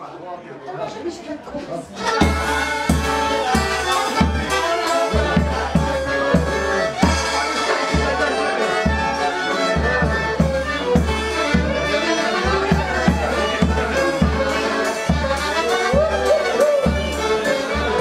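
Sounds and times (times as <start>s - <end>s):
fiddle: 1.5s - 18.0s
accordion: 1.6s - 18.0s
bass drum beating: 2.2s - 8.3s.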